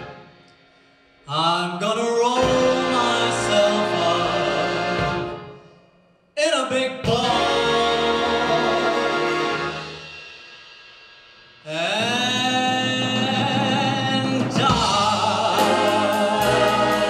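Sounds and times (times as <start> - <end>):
big band playing: 0.0 - 5.8, 6.4 - 17.0
man singing swing: 1.3 - 5.2, 6.4 - 9.7, 11.7 - 17.0.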